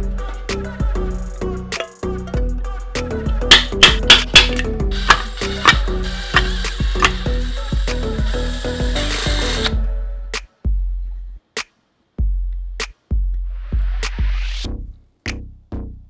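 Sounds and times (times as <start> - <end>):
background music with beat and bass: 0.0 - 16.0
power drill boring into metal: 3.5 - 9.8.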